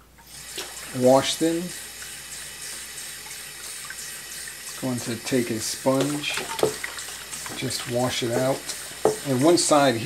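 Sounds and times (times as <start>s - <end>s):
faucet running into sink: 0.2s - 10.0s.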